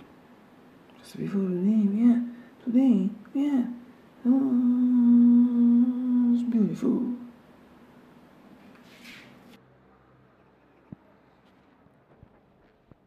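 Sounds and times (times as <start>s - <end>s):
man singing long vowel note: 2.0s - 7.2s.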